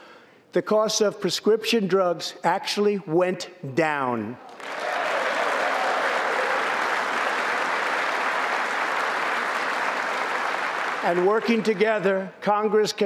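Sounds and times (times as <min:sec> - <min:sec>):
large audience applauding: 0:04.5 - 0:12.1.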